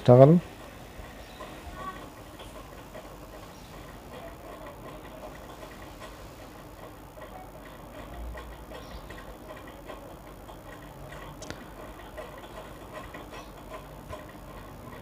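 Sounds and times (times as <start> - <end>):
low steady background noise: 0.0 - 15.0
light clicks on metal track: 0.2 - 15.0.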